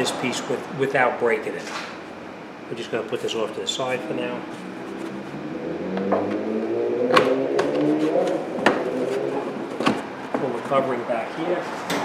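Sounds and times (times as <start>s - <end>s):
low wavering hum: 3.7s - 9.7s.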